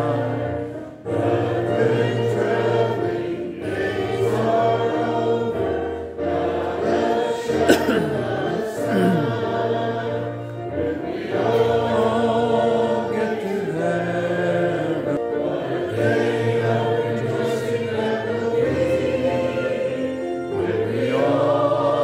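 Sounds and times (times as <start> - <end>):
congregation singing a hymn: 0.0 - 22.0.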